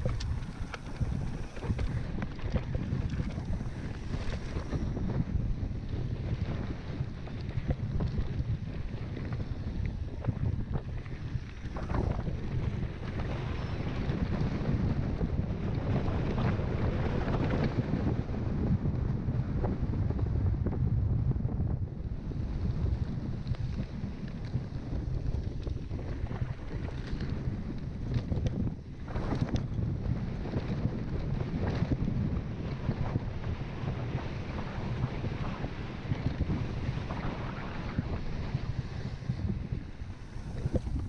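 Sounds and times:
bike rattles and knocks: 0:00.0 - 0:05.4
wind buffeting microphone: 0:00.0 - 0:41.0.

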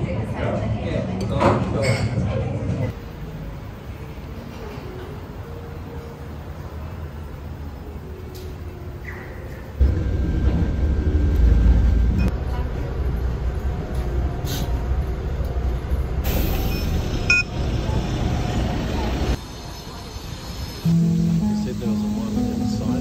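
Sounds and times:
bus rumbling inside cabin: 0:02.6 - 0:23.0
background music: 0:20.8 - 0:23.0.

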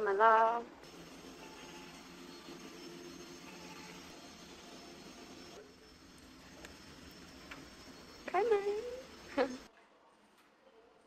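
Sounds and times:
droning room hum: 0:00.0 - 0:09.7.

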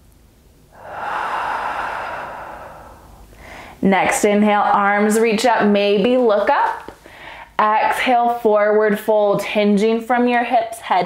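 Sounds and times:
woman exhaling through mouth: 0:00.7 - 0:03.8.

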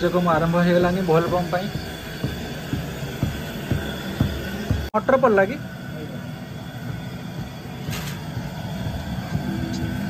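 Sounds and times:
water boiling in pot: 0:00.0 - 0:10.0.

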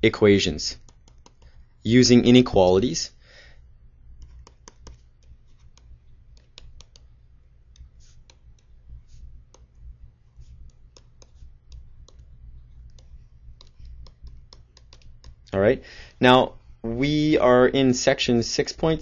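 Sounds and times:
steady low hum: 0:00.0 - 0:19.0
stylus tapping on screen: 0:00.8 - 0:01.8, 0:04.1 - 0:15.6.

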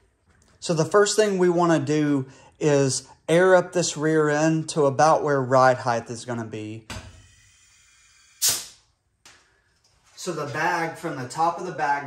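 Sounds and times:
short sharp hiss of air: 0:07.2 - 0:08.9.

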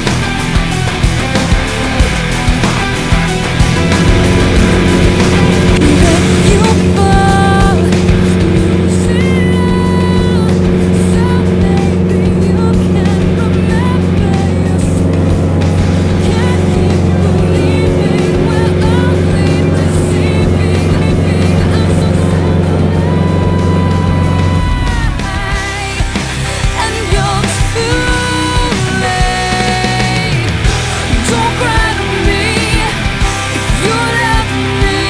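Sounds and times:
light plane piston engine: 0:00.0 - 0:35.0
rock music: 0:00.0 - 0:35.0.

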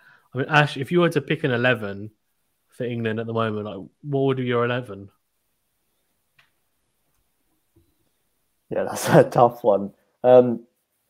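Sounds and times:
faint click: 0:06.3 - 0:08.0.

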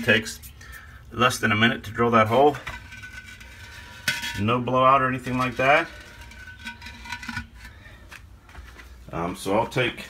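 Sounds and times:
ceramic pot knocking and scraping: 0:02.3 - 0:08.2.

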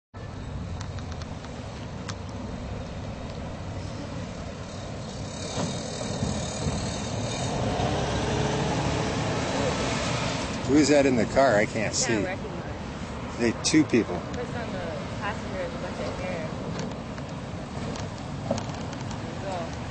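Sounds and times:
car passing: 0:00.4 - 0:19.9.

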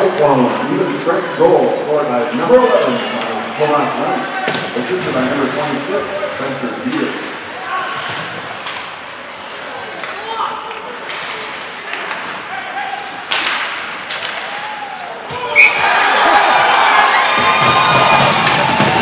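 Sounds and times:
hockey stick and puck knocks: 0:13.3 - 0:14.5
crowd cheering: 0:14.2 - 0:19.0.

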